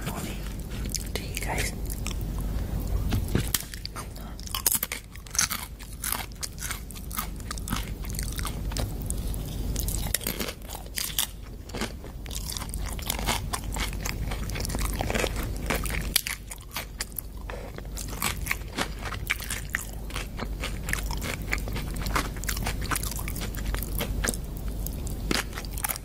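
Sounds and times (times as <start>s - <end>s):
chewing crunchy food: 0.0s - 26.0s.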